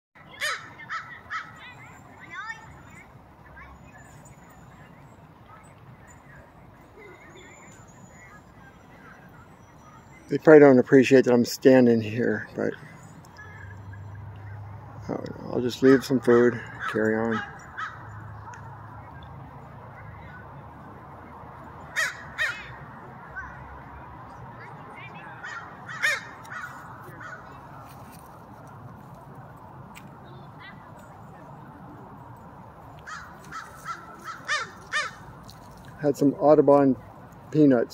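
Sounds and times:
crow cawing: 0:00.3 - 0:01.6, 0:15.8 - 0:18.2, 0:21.9 - 0:22.8, 0:25.4 - 0:27.5, 0:33.0 - 0:35.3.

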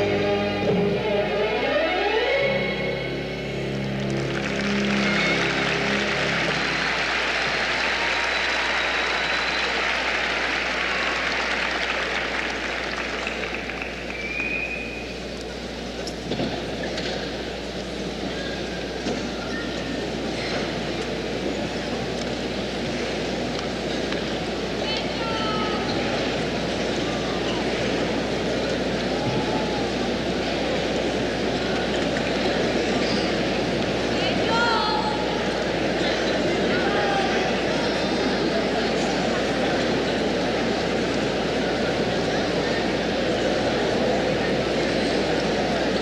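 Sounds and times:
skating program music: 0:00.0 - 0:11.1
crowd noise: 0:00.0 - 0:46.0
audience applauding: 0:03.8 - 0:14.8
whistles from crowd: 0:07.9 - 0:10.1, 0:14.1 - 0:15.2.

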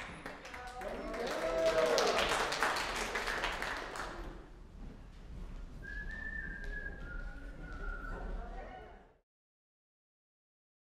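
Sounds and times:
scattered clapping: 0:00.0 - 0:04.5
person whistling high note: 0:05.8 - 0:08.3.

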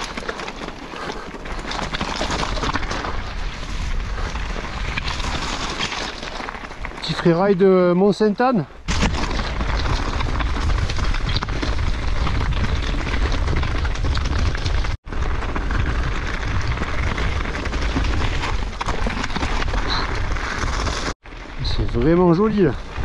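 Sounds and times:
mountain bike rattling: 0:00.0 - 0:08.1, 0:09.0 - 0:23.0.

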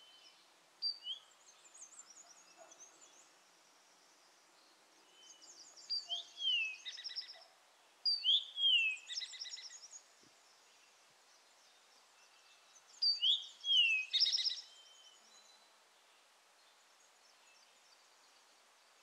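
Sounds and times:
songbird singing: 0:00.0 - 0:19.0.

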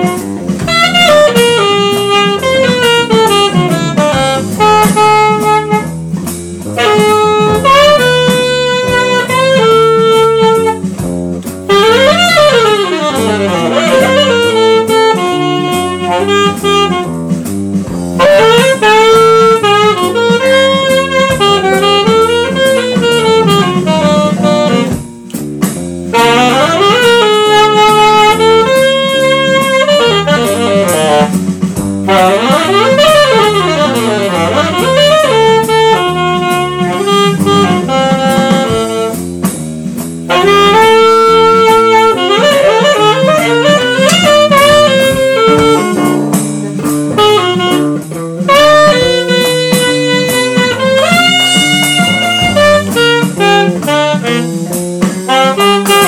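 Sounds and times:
drum kit: 0:00.0 - 0:56.0
electric bass: 0:00.0 - 0:56.0
jazz saxophone: 0:00.0 - 0:56.0.

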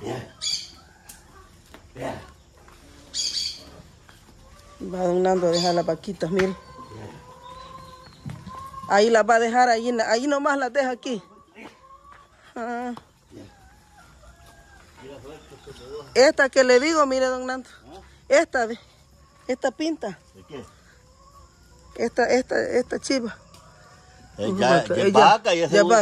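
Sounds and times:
chickens clucking: 0:00.0 - 0:26.0
bird scratchy call: 0:03.1 - 0:03.8.

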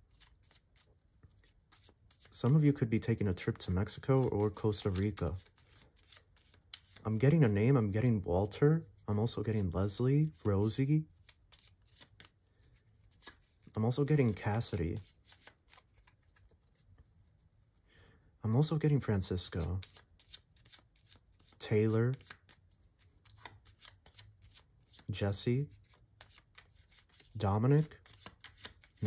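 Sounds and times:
quiet room hum: 0:00.0 - 0:29.0
cards clicking as handled: 0:03.9 - 0:07.1, 0:13.1 - 0:13.5, 0:14.2 - 0:16.8, 0:19.6 - 0:25.1, 0:25.8 - 0:27.3, 0:28.0 - 0:29.0.

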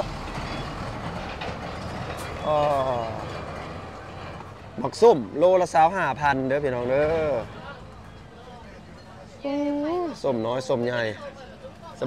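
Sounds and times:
vehicle passing on dirt road: 0:00.0 - 0:08.4.

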